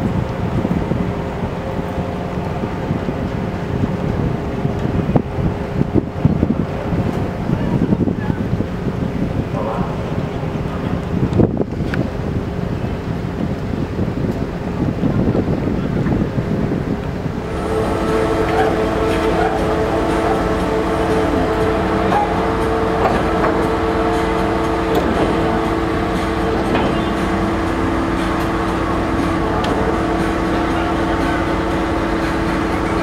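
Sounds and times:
ship machinery humming: 0.0s - 33.0s
wind buffeting microphone: 0.0s - 33.0s.

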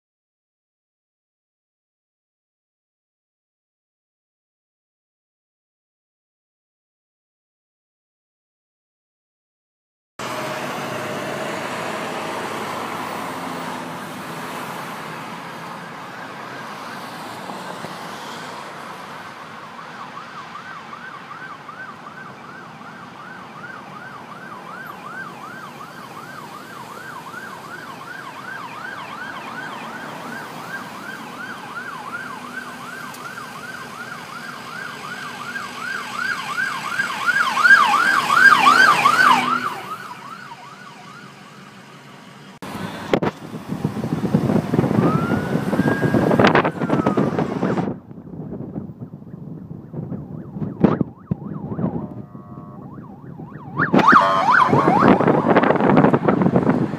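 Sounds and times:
siren yelping: 19.7s - 41.5s, 44.8s - 47.8s, 49.8s - 56.5s
loud rushing noise: 53.7s - 56.9s.

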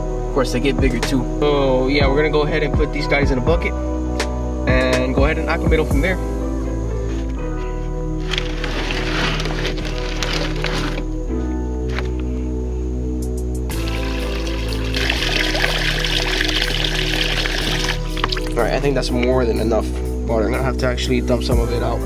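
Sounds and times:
background music with low notes: 0.0s - 22.0s
water pouring into plastic bucket: 8.2s - 11.1s, 13.7s - 18.6s.

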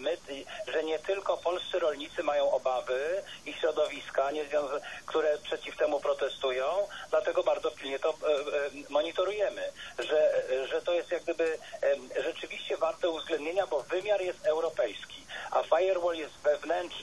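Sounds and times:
person talking over radio: 0.0s - 17.0s.

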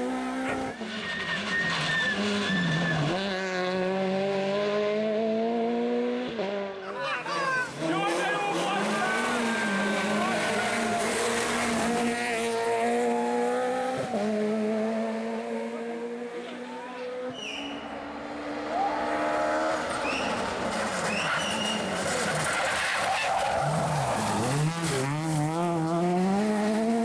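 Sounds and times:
rally car engine at high revs: 0.0s - 27.0s
tyres skidding on gravel: 7.9s - 12.7s, 19.7s - 26.1s.

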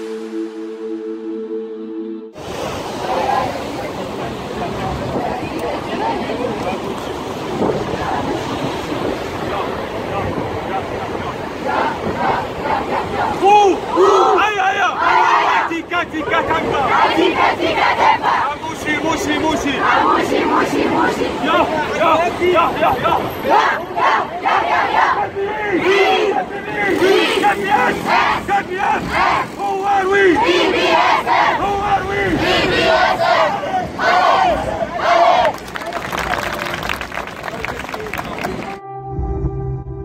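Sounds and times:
crowd shouting a chant: 11.0s - 35.6s.

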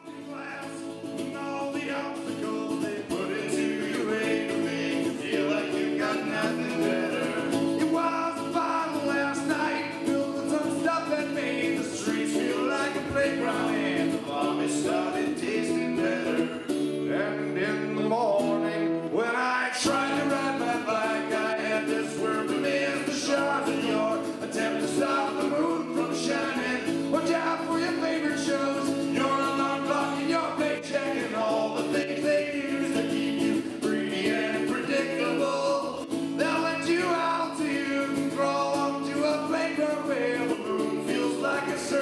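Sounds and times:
man singing: 0.0s - 42.0s
strummed acoustic guitar: 0.0s - 42.0s.

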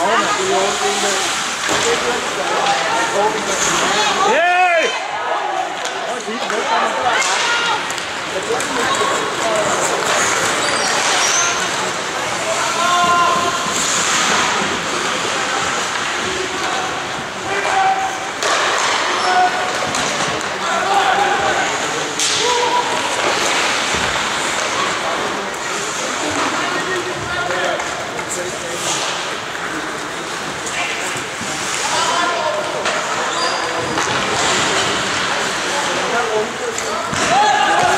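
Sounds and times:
spectators' voices and shouts: 0.0s - 37.9s
knocks of sticks and puck: 0.8s - 4.1s, 5.7s - 37.9s
skate scrapes on ice: 8.9s - 17.0s.

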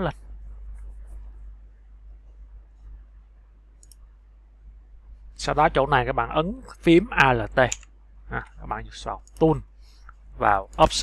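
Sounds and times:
low steady hum: 0.0s - 11.0s
faint computer mouse click: 3.8s - 4.1s.

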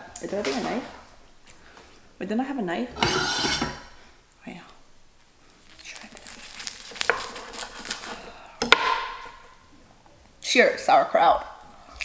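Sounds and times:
seaweed wrapper crackling: 5.4s - 8.5s
knife cutting sushi roll: 6.4s - 8.4s.

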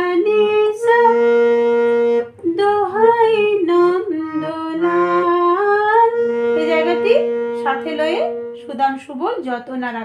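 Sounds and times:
harmonium melody: 0.0s - 10.0s
steady low drone note: 1.0s - 9.6s
person humming: 3.9s - 8.5s.

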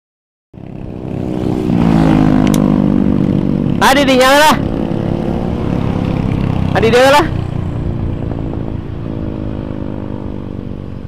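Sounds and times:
motorcycle engine running: 0.6s - 11.0s.

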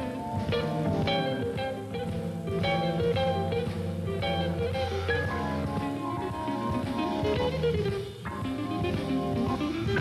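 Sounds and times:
bass: 0.0s - 10.0s
drums: 0.0s - 10.0s
jazz guitar: 0.0s - 10.0s
organ chords: 0.0s - 10.0s.

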